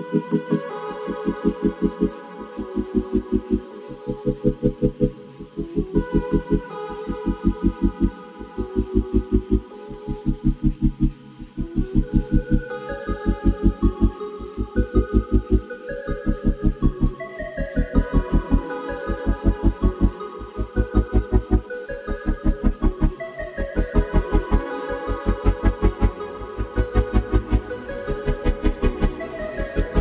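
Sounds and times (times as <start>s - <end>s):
pulsing beat with slow melody: 0.0s - 30.0s.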